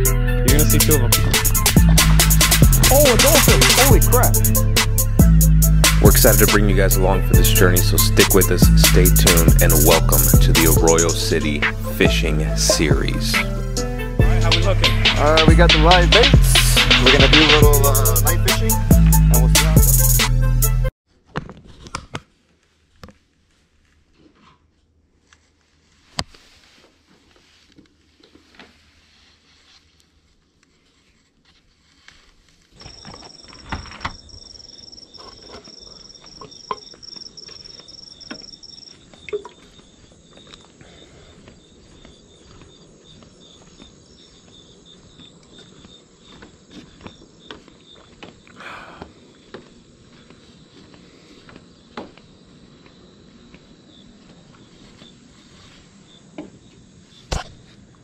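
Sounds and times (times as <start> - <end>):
night insects chirring: 0.6 - 20.2, 32.8 - 58.0.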